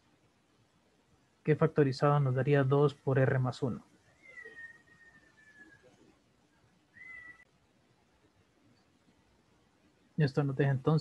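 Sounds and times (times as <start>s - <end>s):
faint high-pitched animal cries: 4.2s - 5.9s, 6.9s - 7.5s.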